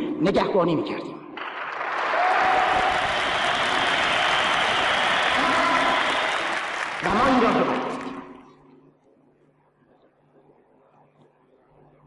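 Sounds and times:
audience applauding: 1.4 - 8.4.

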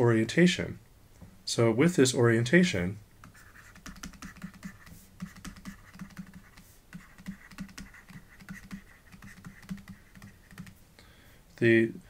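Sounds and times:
stylus clicking on tablet: 3.2 - 10.8.

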